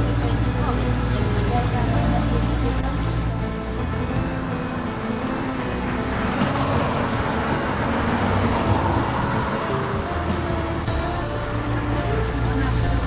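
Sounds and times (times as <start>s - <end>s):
background music with held notes: 0.0s - 13.0s
road traffic noise: 0.0s - 13.0s
vehicle passing: 0.0s - 13.0s.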